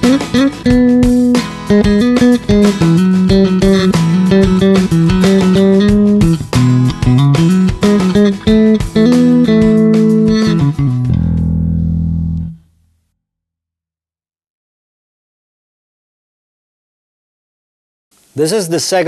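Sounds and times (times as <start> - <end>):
electric bass guitar plucked: 0.0 - 13.0.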